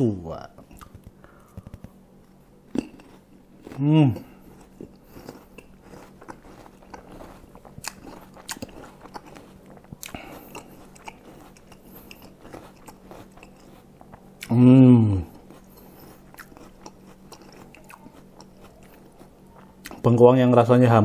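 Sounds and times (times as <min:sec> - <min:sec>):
person chewing crunchy food: 0:00.6 - 0:20.2.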